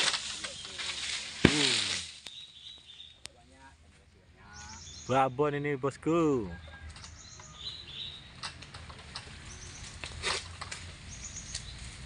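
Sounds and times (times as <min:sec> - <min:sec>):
rustling hiss: 0:00.0 - 0:03.0.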